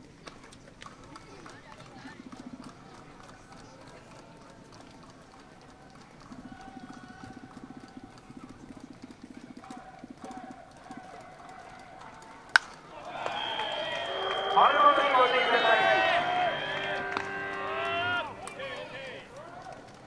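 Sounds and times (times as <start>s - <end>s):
distant crowd noise: 0.0s - 20.0s
bat cracking on baseball: 9.4s - 14.1s.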